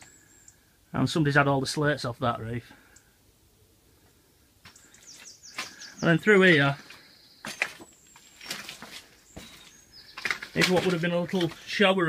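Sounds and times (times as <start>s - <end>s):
footsteps crunching on rubble: 4.6s - 12.0s.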